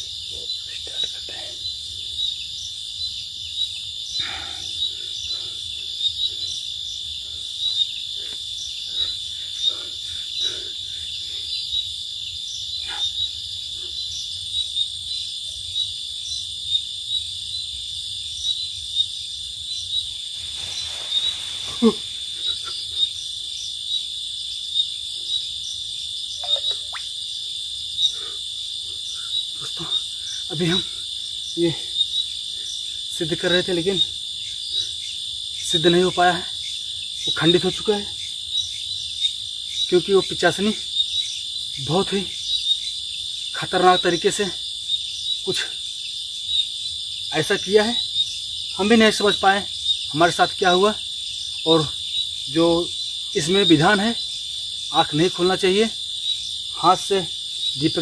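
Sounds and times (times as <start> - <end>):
high-pitched insect trill: 0.0 - 58.0
insect chirps: 0.0 - 58.0.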